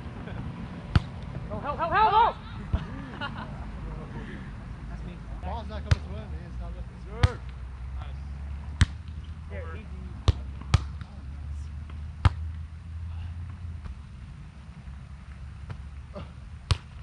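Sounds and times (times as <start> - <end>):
volleyball smacks: 0.9 - 1.3, 7.2 - 7.6, 10.2 - 11.1.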